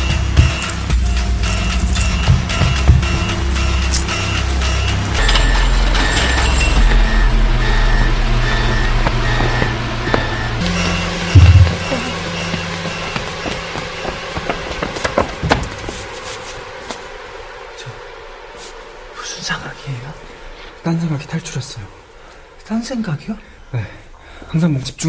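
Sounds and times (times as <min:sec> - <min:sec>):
low drone: 0:00.0 - 0:22.8
deep boom: 0:06.8 - 0:12.6.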